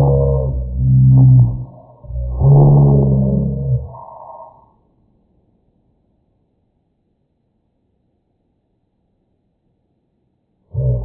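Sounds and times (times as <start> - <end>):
slowed deep vocal tone: 0.0 - 4.6, 10.7 - 11.0.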